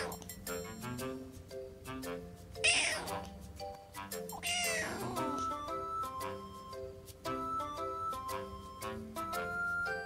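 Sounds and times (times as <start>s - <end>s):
soft background music: 0.0s - 10.0s
kitten meowing: 2.6s - 3.2s, 4.4s - 5.5s.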